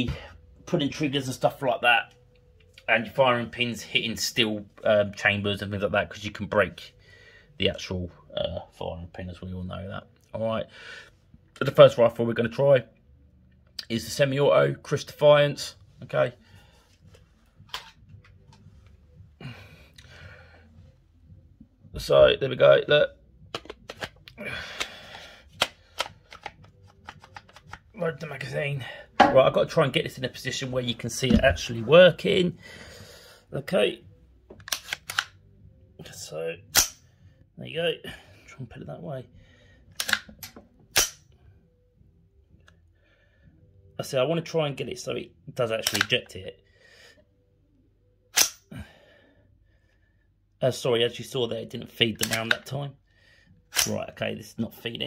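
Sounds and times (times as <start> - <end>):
plastic clicks into magazine: 23.5 - 27.9, 34.6 - 35.4, 40.0 - 41.2, 45.8 - 46.2, 48.4 - 48.6, 52.2 - 52.7
rifle bolt metallic clack: 40.0 - 41.2.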